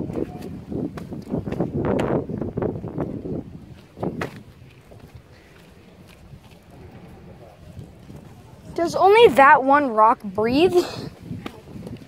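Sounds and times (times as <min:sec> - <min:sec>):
flip-flop footsteps on rock: 0:00.0 - 0:07.1.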